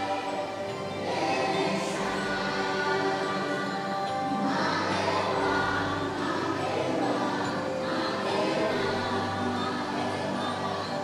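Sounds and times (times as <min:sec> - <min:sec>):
choir singing long notes: 0:00.0 - 0:11.0
sustained musical background: 0:00.0 - 0:11.0.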